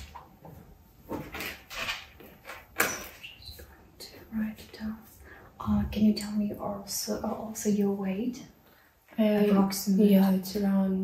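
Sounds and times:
woman whispering softly: 3.6s - 6.4s.

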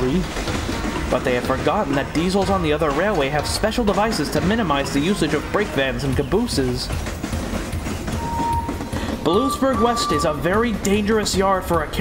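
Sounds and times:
freight train rolling: 0.0s - 12.0s
short steady tone: 8.2s - 10.5s.

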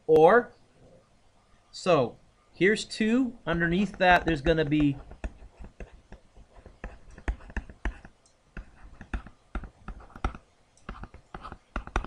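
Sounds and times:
stylus tapping on tablet screen: 3.8s - 12.0s.

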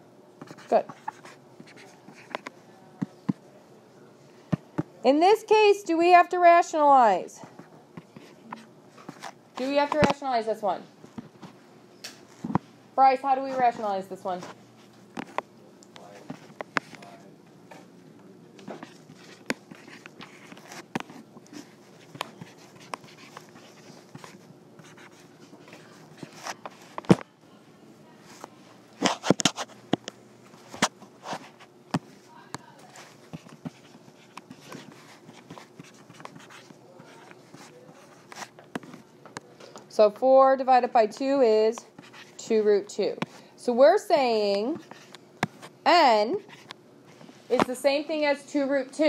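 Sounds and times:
faint steady hum: 0.0s - 49.0s
stylus scratching on screen: 0.4s - 2.6s, 5.1s - 10.8s, 13.2s - 15.4s, 18.6s - 27.1s, 28.3s - 29.8s, 32.8s - 39.0s, 40.6s - 43.1s.

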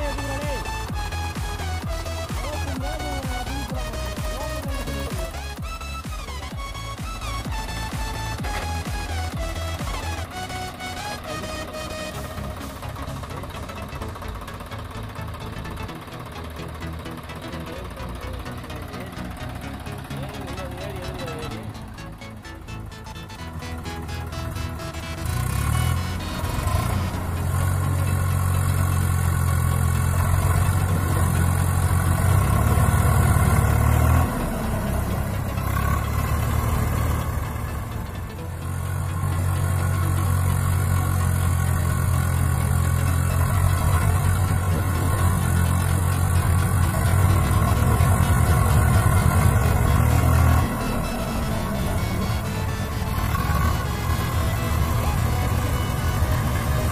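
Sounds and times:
background music: 0.0s - 56.9s
diesel tractor engine working hard: 0.0s - 56.9s.

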